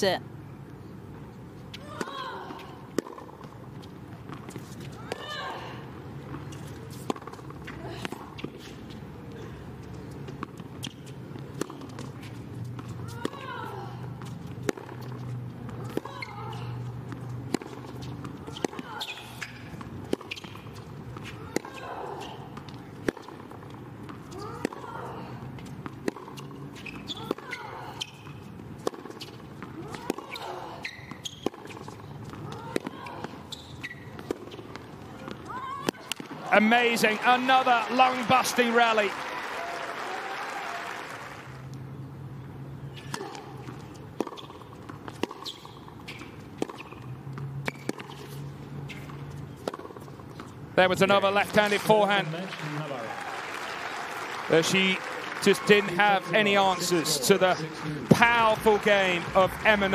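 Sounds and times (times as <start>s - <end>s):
racket striking ball: 34.2s - 36.4s, 48.9s - 50.1s.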